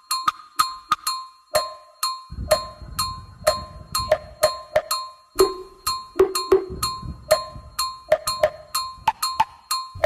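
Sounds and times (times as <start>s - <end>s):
bell-like percussion: 0.0s - 10.0s
low bass: 2.3s - 4.5s.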